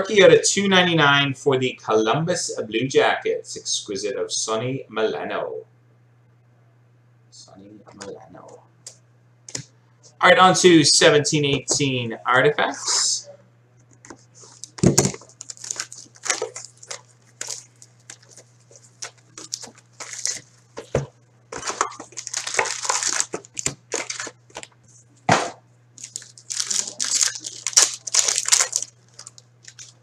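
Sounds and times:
steady low hum: 0:00.0 - 0:30.0
wrapper crinkling and tearing: 0:14.4 - 0:24.7, 0:26.0 - 0:30.0.

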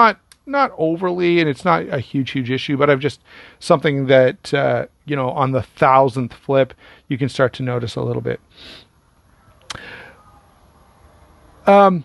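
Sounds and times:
short hiss: 0:08.5 - 0:08.9, 0:09.7 - 0:10.1.

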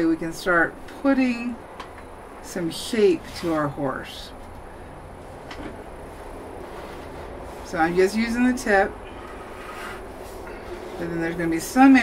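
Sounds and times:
electric fan humming: 0:00.0 - 0:12.0.

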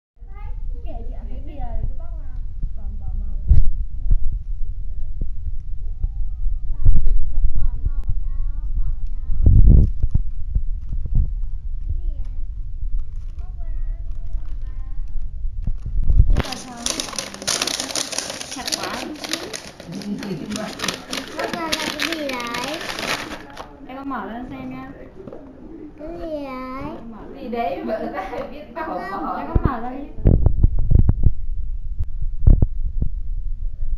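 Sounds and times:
steady low rumble: 0:00.2 - 0:16.7, 0:30.1 - 0:33.9
paper bag crinkling: 0:15.7 - 0:23.8.

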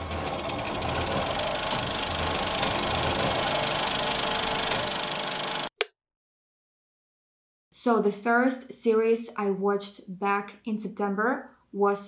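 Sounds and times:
fast mechanical clatter: 0:00.0 - 0:05.7.

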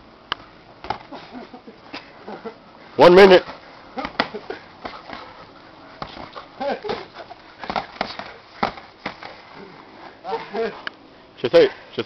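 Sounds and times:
boxing gloves landing punches: 0:00.8 - 0:01.2, 0:04.0 - 0:05.3, 0:06.0 - 0:09.4
laughter: 0:01.1 - 0:02.6.

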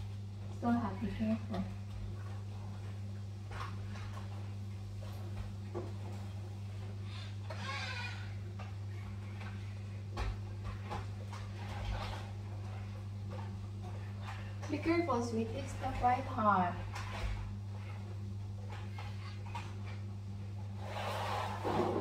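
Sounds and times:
steady low hum: 0:00.0 - 0:22.0.

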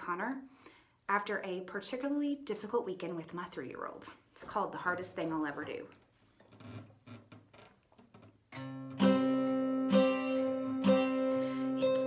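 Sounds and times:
acoustic guitar chords strummed: 0:08.6 - 0:12.0.

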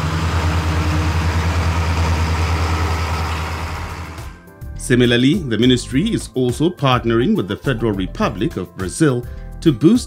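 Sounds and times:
tractor diesel engine running: 0:00.0 - 0:04.4.

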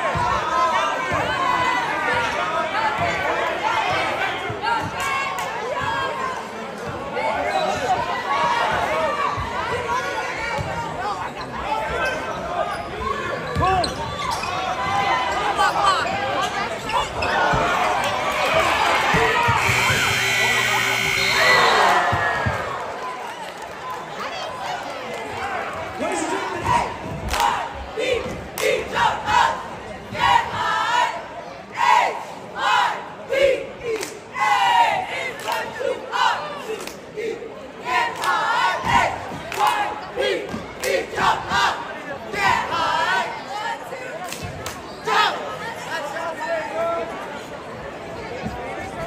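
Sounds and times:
crowd noise: 0:00.0 - 0:49.0
scoreboard horn: 0:19.4 - 0:22.1
cheerleaders shouting a cheer: 0:24.1 - 0:44.4.

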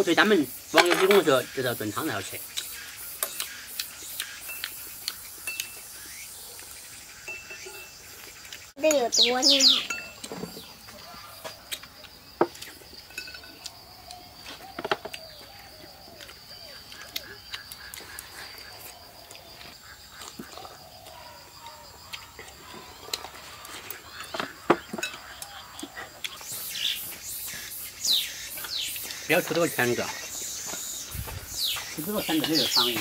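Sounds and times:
chewing: 0:03.3 - 0:05.9, 0:11.0 - 0:27.6.

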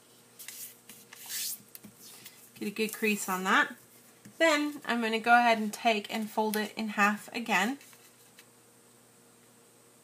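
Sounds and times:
fingers rubbing paper fold: 0:00.4 - 0:02.2.

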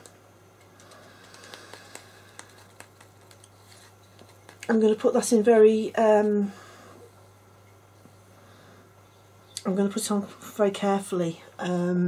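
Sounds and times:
brush clicking and scraping cup: 0:00.6 - 0:04.8.

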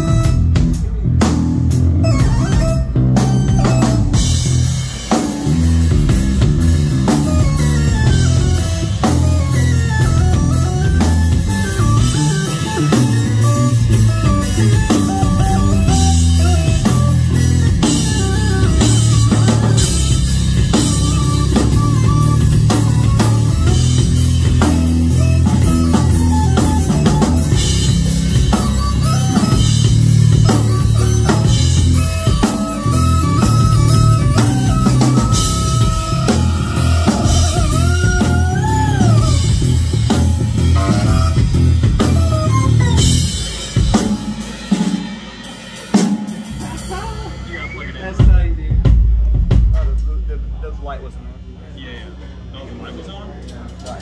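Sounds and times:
keyboard playing lines: 0:00.0 - 0:49.7
drum kit with cymbals: 0:00.0 - 0:52.5
electric bass: 0:00.0 - 0:54.0.

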